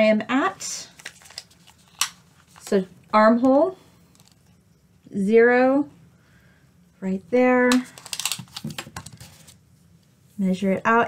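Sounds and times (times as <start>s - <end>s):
tape measure clicks and rustles: 7.7s - 9.2s.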